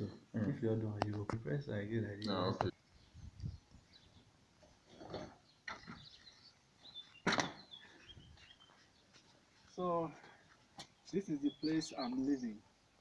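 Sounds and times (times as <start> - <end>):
quiet knocks and rustles: 4.6 - 11.2
faint bird chirps: 5.4 - 10.0, 10.8 - 12.7.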